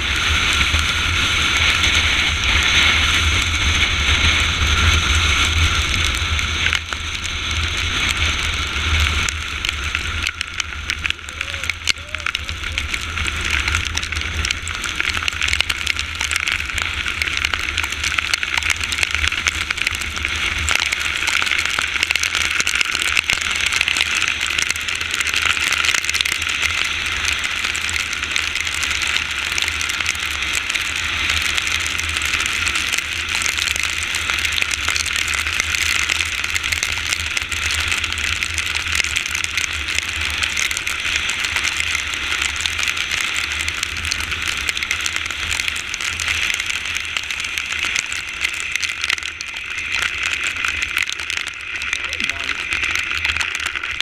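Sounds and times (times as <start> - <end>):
low rumble: 0.0 - 54.0
tyres on wet asphalt: 0.0 - 54.0
wind and rain rushing: 0.0 - 54.0.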